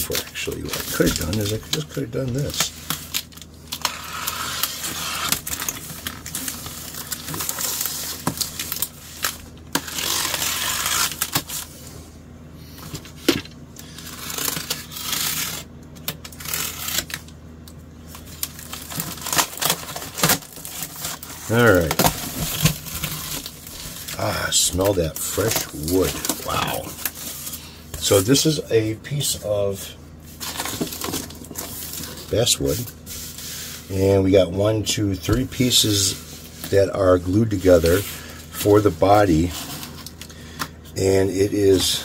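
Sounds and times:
packing tape being slit: 0.1 - 11.7, 13.8 - 17.4, 18.1 - 24.2.

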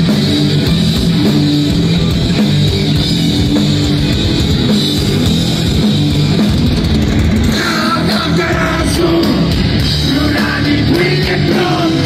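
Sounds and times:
bass: 0.0 - 12.0
drum kit: 0.0 - 12.0
electric guitars: 0.0 - 12.0.

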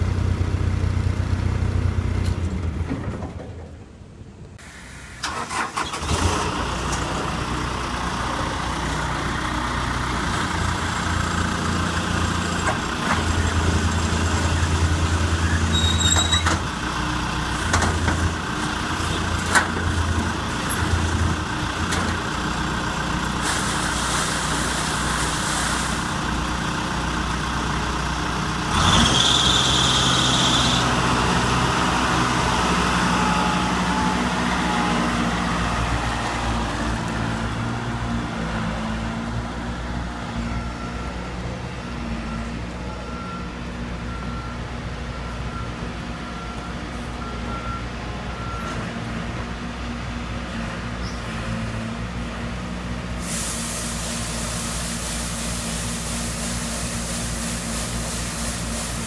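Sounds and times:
road sweeper engine running: 6.0 - 43.0, 49.3 - 59.0.

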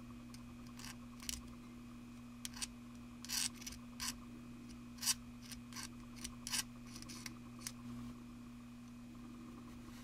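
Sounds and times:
hand tool scraping plastic: 2.4 - 4.2, 5.0 - 7.8.

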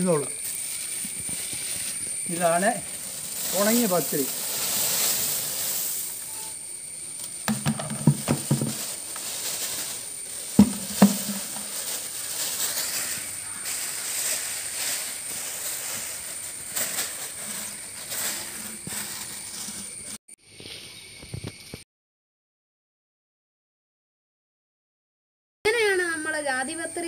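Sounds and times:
steady high hiss: 0.0 - 21.8
plastic bags rustling: 0.3 - 6.4, 7.5 - 20.1
plastic buckets knocking: 7.4 - 9.3, 10.5 - 12.1.

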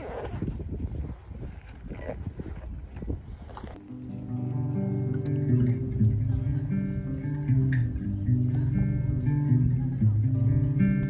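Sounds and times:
acoustic guitar melody: 3.8 - 11.0.

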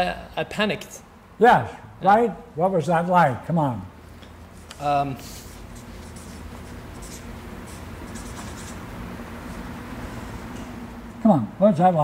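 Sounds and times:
marker scratching on paper: 4.6 - 10.6.

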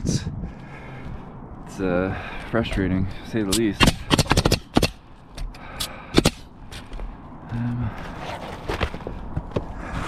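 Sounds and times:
nail gun shots: 3.7 - 5.0, 6.2 - 6.4.

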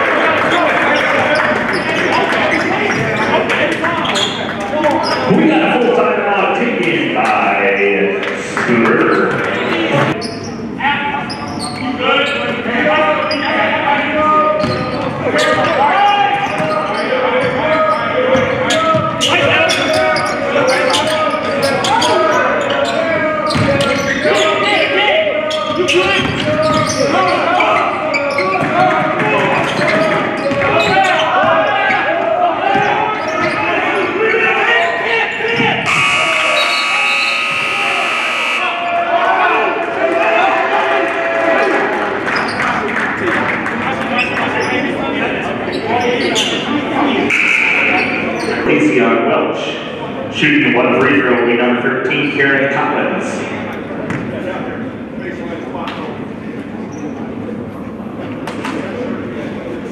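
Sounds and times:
players and coaches voices: 0.0 - 59.9
horn sounding: 35.8 - 38.9, 47.3 - 48.0.

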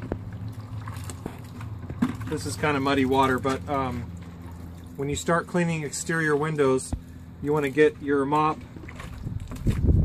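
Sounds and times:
mop swishing in bucket of water: 0.0 - 10.0.

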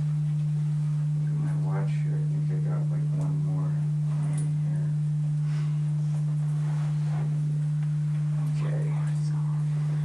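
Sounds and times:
loud electrical hum: 0.0 - 10.0.

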